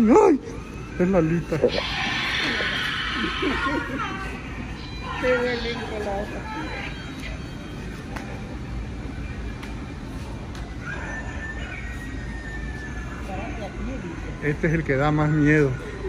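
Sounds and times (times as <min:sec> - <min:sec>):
low background hum: 0:00.0 - 0:16.0.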